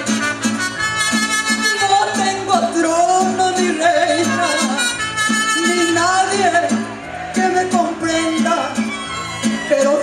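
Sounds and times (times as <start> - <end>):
mariachi band playing: 0.0 - 10.0
strummed guitar and bass: 0.0 - 10.0
trumpets holding melody notes: 0.1 - 2.3, 4.2 - 6.2.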